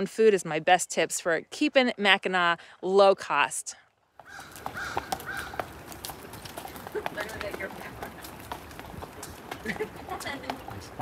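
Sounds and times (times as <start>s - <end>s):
hooves clopping on pavement: 0.0s - 11.0s
outdoor ambience: 0.0s - 11.0s
bird calling: 4.2s - 5.8s.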